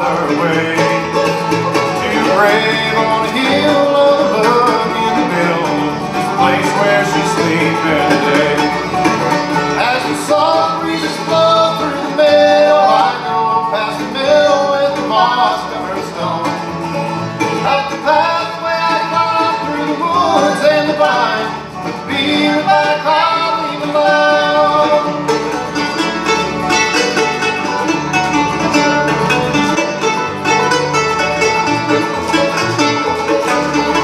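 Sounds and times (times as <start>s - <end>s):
acoustic guitar: 0.0s - 34.0s
banjo: 0.0s - 34.0s
mandolin: 0.0s - 34.0s
upright bass: 0.0s - 34.0s.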